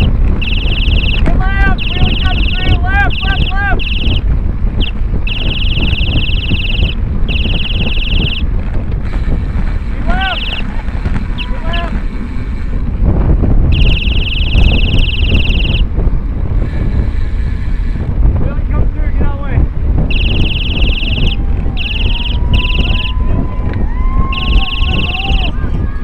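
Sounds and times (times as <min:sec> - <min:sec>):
voices calling out: 0:00.0 - 0:04.2, 0:10.0 - 0:12.0, 0:20.1 - 0:26.0
high buzzing noise: 0:00.0 - 0:08.4, 0:10.1 - 0:10.6, 0:13.6 - 0:15.9, 0:20.1 - 0:23.2
wind buffeting microphone: 0:00.0 - 0:26.0.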